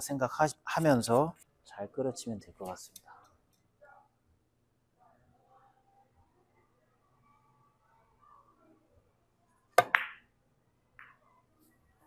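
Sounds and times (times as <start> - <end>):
cue striking billiard ball: 9.8 - 10.3.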